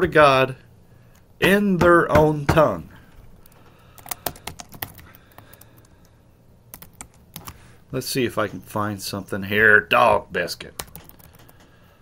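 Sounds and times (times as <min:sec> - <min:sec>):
typing on computer keyboard: 0:04.0 - 0:06.0, 0:06.7 - 0:07.6, 0:10.8 - 0:11.7.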